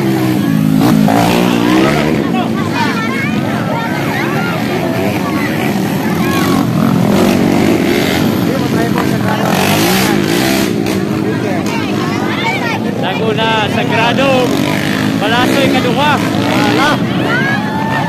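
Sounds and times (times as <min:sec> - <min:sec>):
crowd voices: 0:00.0 - 0:18.0
motorcycle engines running: 0:00.0 - 0:18.0.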